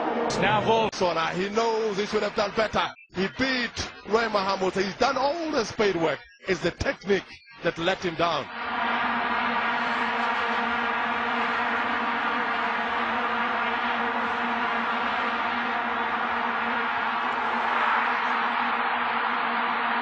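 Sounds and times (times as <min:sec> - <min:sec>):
crowd noise: 0:00.0 - 0:06.8, 0:07.6 - 0:20.0
vuvuzelas droning: 0:08.5 - 0:20.0.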